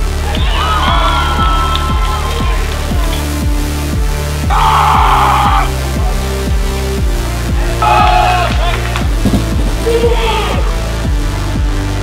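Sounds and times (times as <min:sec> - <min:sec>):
electronic dance music: 0:00.0 - 0:11.0
high held shout: 0:00.2 - 0:03.4, 0:04.4 - 0:06.0, 0:07.6 - 0:09.1, 0:09.8 - 0:10.9.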